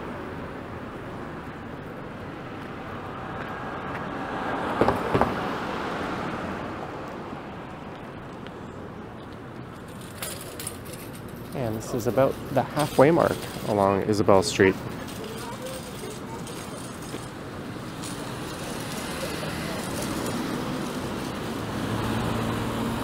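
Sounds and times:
city street traffic: 0.0s - 23.0s
car passing close by: 3.1s - 7.5s, 18.0s - 23.0s.

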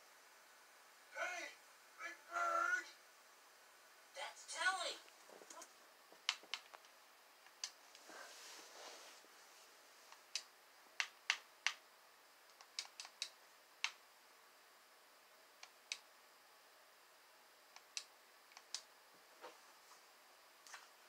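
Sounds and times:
soft rustle: 7.8s - 10.2s, 19.4s - 21.0s.

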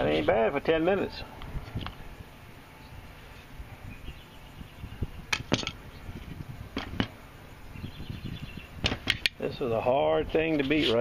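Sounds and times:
handling noise around axe head: 5.3s - 7.2s.

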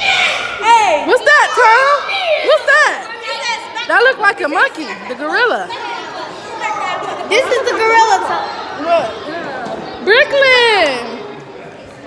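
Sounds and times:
high voices chattering: 0.0s - 12.0s.

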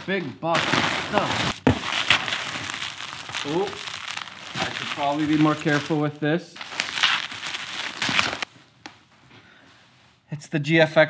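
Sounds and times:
bubble wrap crinkling: 0.0s - 8.5s.

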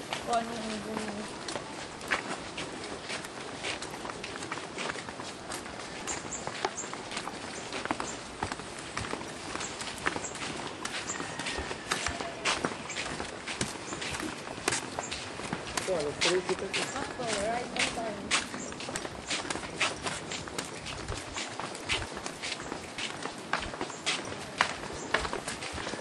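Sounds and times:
footsteps on concrete: 0.0s - 26.0s.

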